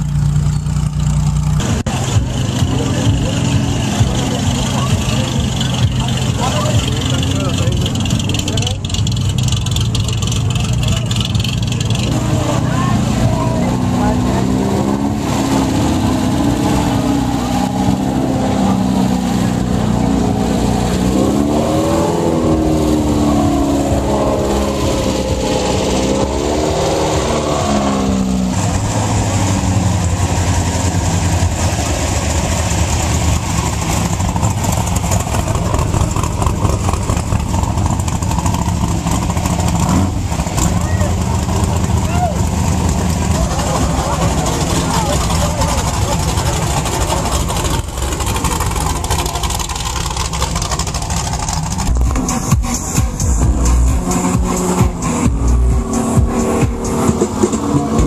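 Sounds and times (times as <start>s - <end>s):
race vehicle engine revving: 0.0s - 58.0s
crowd chatter: 1.6s - 28.6s, 33.3s - 58.0s.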